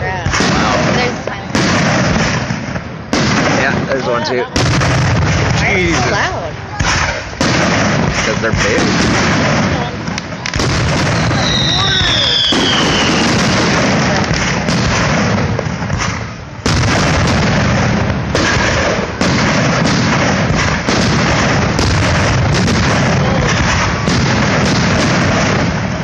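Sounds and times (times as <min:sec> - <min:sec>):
firework shells bursting: 0:00.0 - 0:26.0
falling firework whistle: 0:11.0 - 0:13.6.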